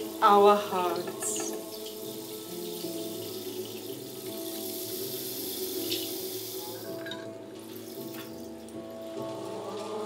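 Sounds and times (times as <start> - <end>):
choir singing held chords: 0.2 - 3.8, 9.0 - 10.0
steady hiss: 1.8 - 7.0.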